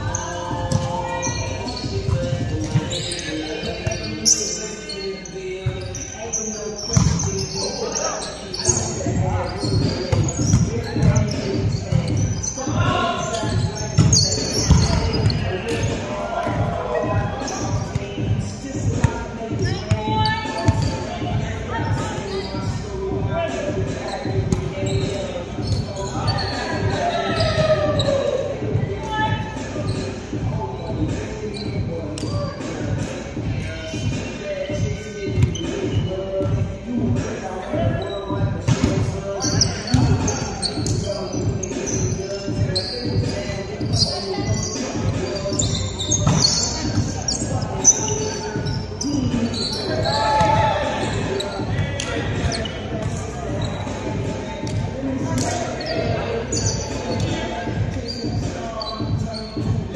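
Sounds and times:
shoes squeaking on floor: 0.0 - 16.1, 16.9 - 28.5, 29.1 - 36.7, 37.4 - 59.9
players calling out: 0.0 - 30.8, 37.7 - 59.7.

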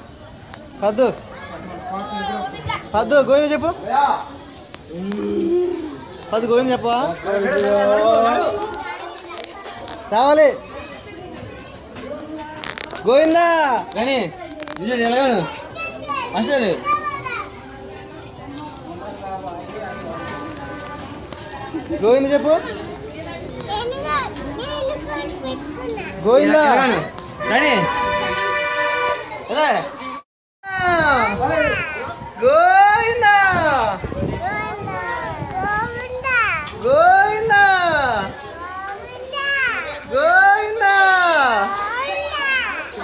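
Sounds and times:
faint background voices: 0.0 - 43.0.

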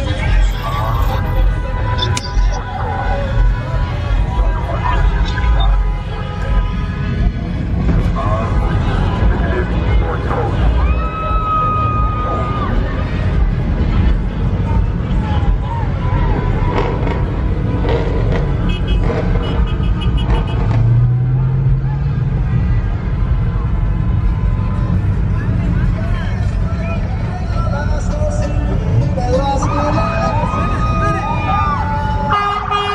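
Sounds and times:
voices: 0.0 - 17.5, 21.4 - 32.9
car engines in traffic: 0.0 - 32.9
car horn steady tone: 4.9 - 7.3, 18.7 - 20.6, 32.3 - 32.9.

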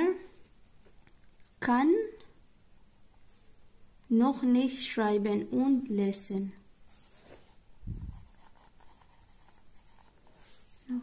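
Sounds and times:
pencil scratching on paper: 7.0 - 10.8.

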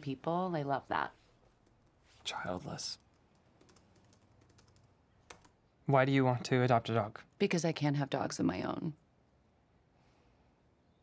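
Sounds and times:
soft laptop keyboard typing: 1.4 - 5.6.

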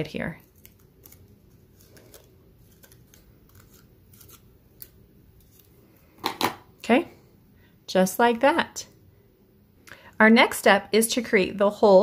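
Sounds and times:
scissors snipping cardstock: 0.6 - 5.6.

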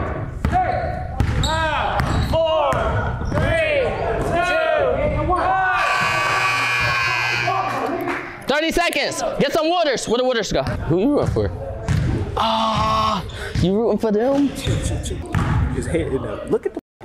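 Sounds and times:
sneakers squeaking on floor: 0.6 - 3.6
basketball bouncing: 1.2 - 3.5.

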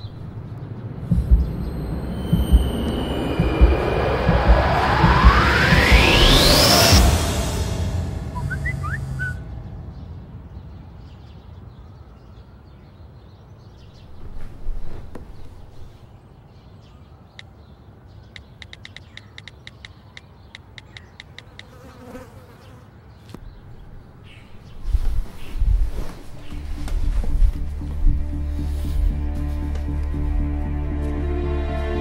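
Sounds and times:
low thumps: 0.0 - 10.5, 23.4 - 30.9
dark music drone: 0.2 - 11.4, 26.4 - 32.0
phone keypad taps: 18.4 - 21.7.

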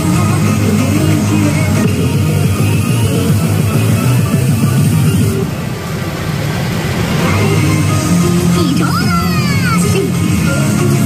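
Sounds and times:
loud electronic music: 0.0 - 11.0.

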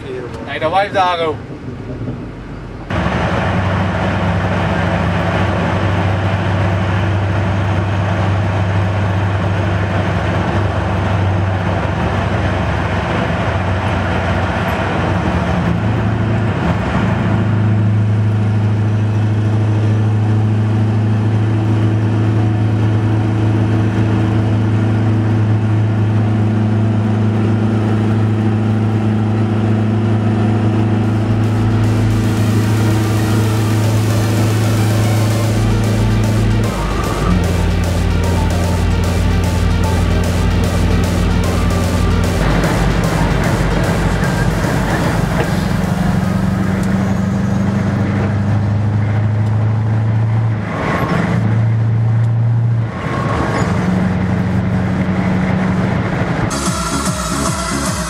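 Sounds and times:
truck engine pulling: 0.0 - 56.5
tyre and road noise: 0.0 - 56.7.

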